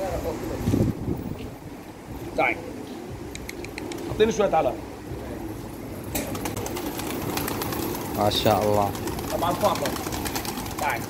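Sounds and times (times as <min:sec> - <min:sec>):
pigeons cooing: 0:02.1 - 0:11.0
wings clapping and fluttering: 0:03.4 - 0:04.1, 0:06.1 - 0:11.0.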